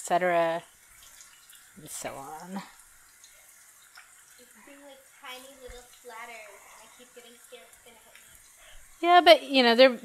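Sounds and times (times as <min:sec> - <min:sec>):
oil sizzling: 0:00.0 - 0:10.0.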